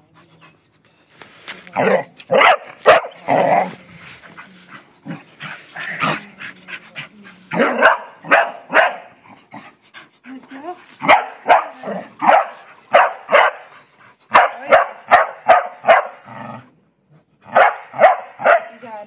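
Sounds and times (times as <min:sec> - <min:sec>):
dog barking: 0:02.3 - 0:03.2, 0:07.6 - 0:09.1, 0:11.0 - 0:13.7, 0:14.3 - 0:16.2, 0:17.5 - 0:18.8.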